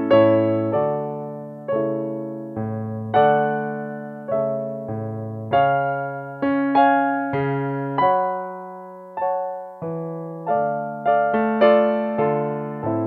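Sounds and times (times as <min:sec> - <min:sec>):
piano tango accompaniment: 0:00.0 - 0:13.0.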